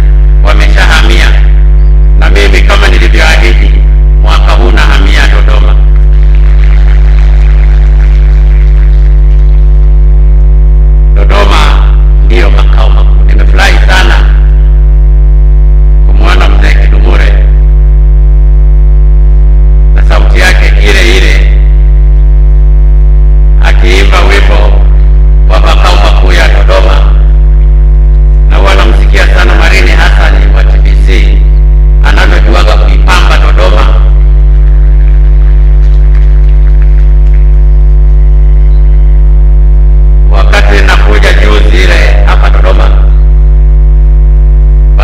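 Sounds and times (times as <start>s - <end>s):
electrical mains hum: 0.0s - 45.0s.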